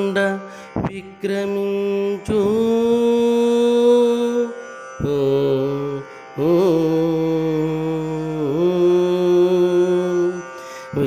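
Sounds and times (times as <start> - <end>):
person chanting drawn-out notes: 0.0 - 11.0.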